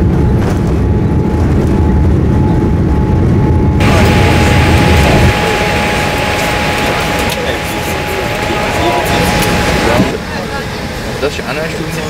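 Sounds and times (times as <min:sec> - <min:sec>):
low rumble: 0:00.0 - 0:11.2
air-conditioning hiss: 0:03.8 - 0:12.0
passengers' voices: 0:03.8 - 0:12.0.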